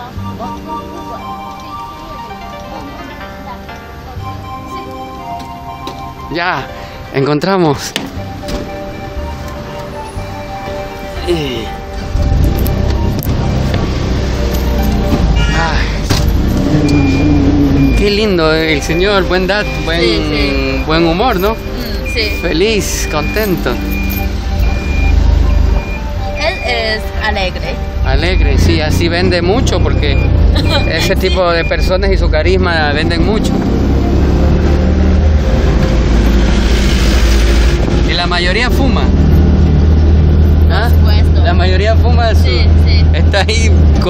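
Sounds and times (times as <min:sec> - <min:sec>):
car engine and road rumble: 0:00.0 - 0:44.0.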